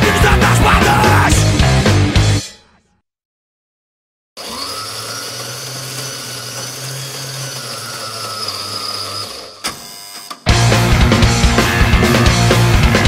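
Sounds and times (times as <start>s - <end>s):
punk band with distorted guitars: 0.0s - 2.8s, 10.4s - 13.0s.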